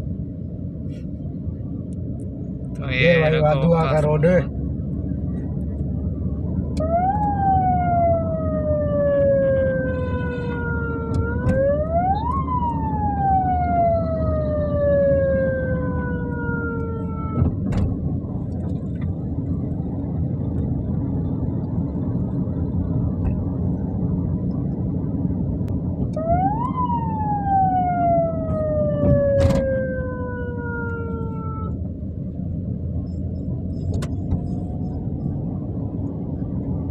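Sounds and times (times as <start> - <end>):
traffic rumble: 0.0 - 36.9
siren wailing: 6.7 - 17.5, 26.1 - 31.8.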